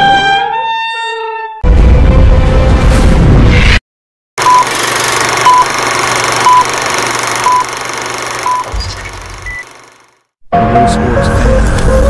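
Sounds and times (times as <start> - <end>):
short beeps: 4.4 - 4.7
film projector whirr and clatter: 4.4 - 10.3.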